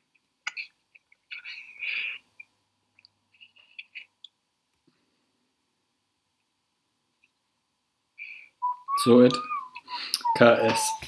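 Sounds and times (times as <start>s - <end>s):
person whistling a steady note: 8.6s - 11.0s.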